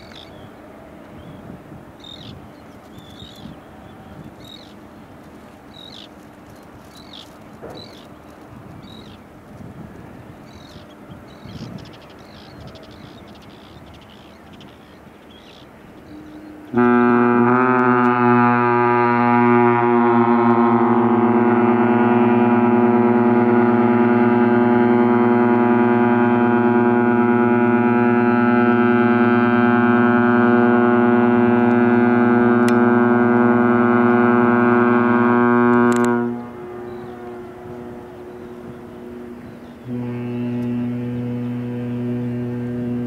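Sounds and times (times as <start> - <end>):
ship's horn blast: 15.7 - 43.0.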